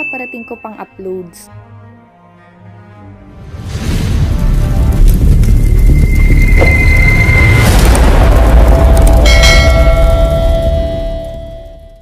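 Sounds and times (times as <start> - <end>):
bell-like chime ringing: 0.0 - 1.5, 9.2 - 12.0
deep boom with heavy rumble: 3.9 - 11.9.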